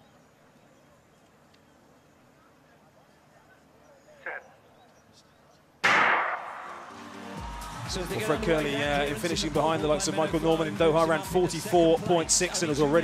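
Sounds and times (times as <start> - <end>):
starting gun crack: 5.8 - 7.0.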